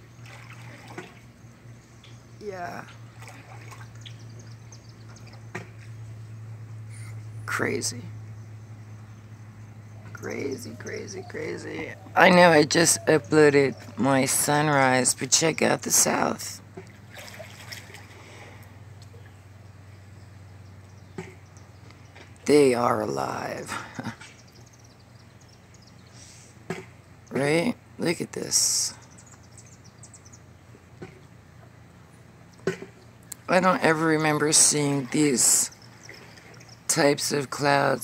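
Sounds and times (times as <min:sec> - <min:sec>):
small birds chirping: 0:00.0 - 0:17.0, 0:18.2 - 0:38.0
low hum: 0:00.0 - 0:26.3.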